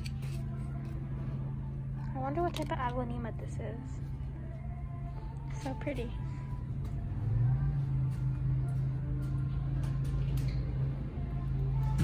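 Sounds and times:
low rumbling store hum: 0.0 - 12.0.

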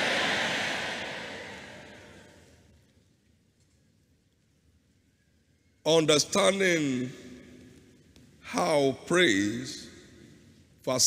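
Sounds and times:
congregation applauding: 0.0 - 2.2.

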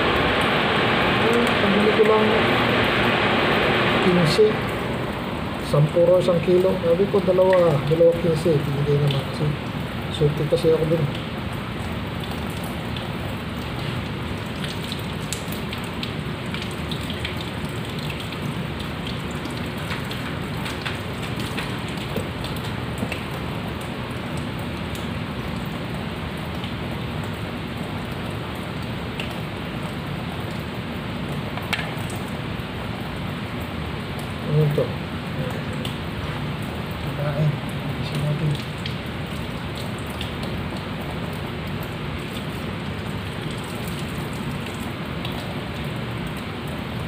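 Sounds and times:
tap water splashing into a pot: 11.0 - 34.4, 37.6 - 47.0.

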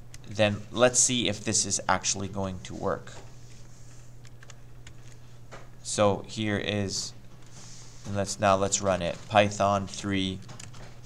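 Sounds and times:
low steady hum: 0.0 - 11.0
computer keyboard keystrokes: 4.2 - 5.2, 10.4 - 11.0.

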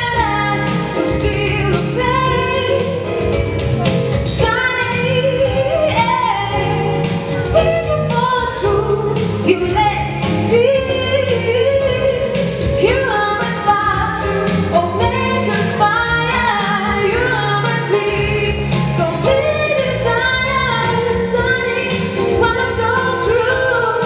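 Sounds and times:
woman singing into microphone: 0.0 - 3.4, 4.2 - 24.0
jazz-rock accompaniment: 0.0 - 24.0.

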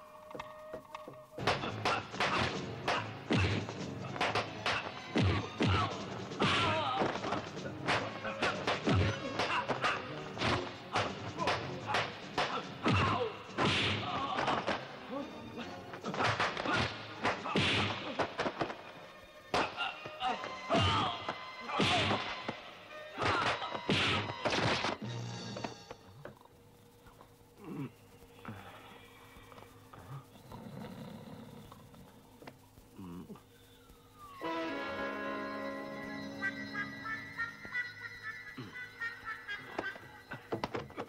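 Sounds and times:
grunts and cries: 19.5 - 22.4
low music: 34.2 - 40.5.

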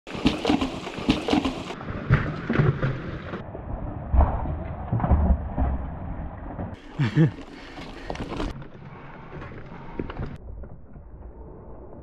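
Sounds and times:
bike rattling over rocks: 4.3 - 11.0.

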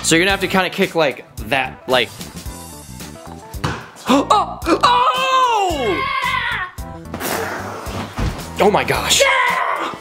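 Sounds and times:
background music: 0.0 - 10.0
child shouting excitedly: 4.8 - 6.8, 9.1 - 10.0.

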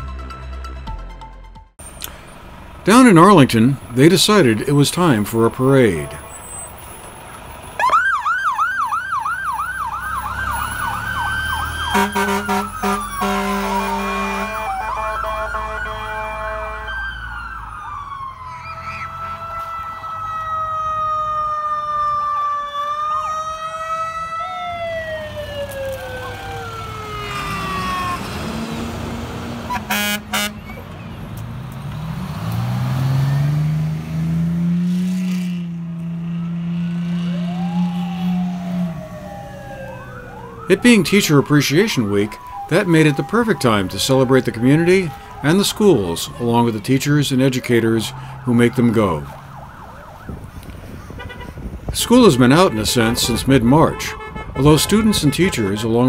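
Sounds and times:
emergency vehicle sirens: 1.8 - 56.0
deep siren winding up: 7.8 - 28.8, 36.0 - 46.4
horn blasts: 11.9 - 17.0, 29.6 - 30.8, 51.2 - 56.0.

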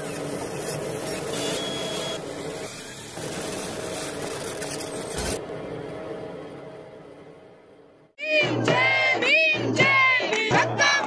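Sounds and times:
low hum: 5.1 - 8.2.

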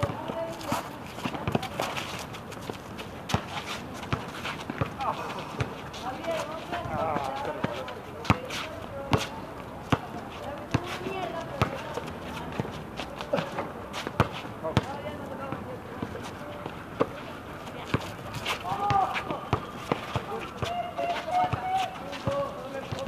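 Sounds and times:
voices of players: 0.0 - 23.0.

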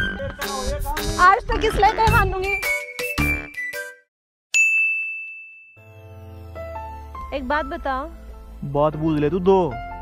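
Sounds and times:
bright bell-like ding: 4.6 - 6.0
soft background music: 5.8 - 10.0.

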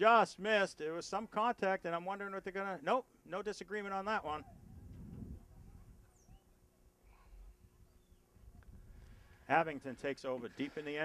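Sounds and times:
faint low rumble: 4.4 - 9.5
faint high chirps: 5.6 - 8.8.

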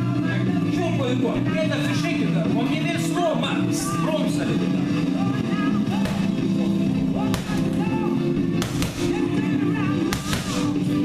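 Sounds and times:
rock music: 0.0 - 11.0
boxing gloves smacking mitts: 5.9 - 11.0.

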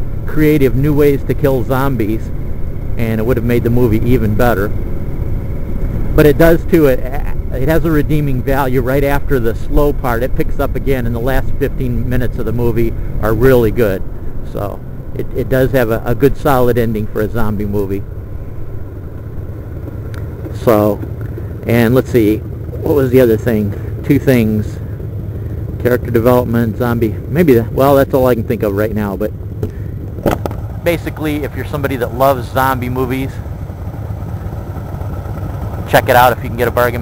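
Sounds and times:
motorcycle engine cruising: 0.0 - 37.0.

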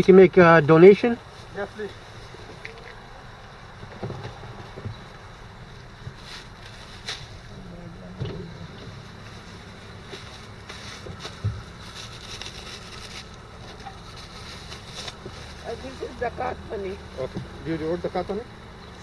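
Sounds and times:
low background rumble: 0.0 - 19.0
plastic bag rustling: 8.8 - 16.6.

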